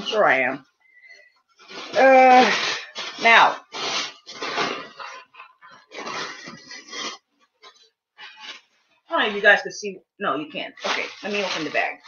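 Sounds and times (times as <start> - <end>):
plastic bag crinkling: 10.8 - 12.0.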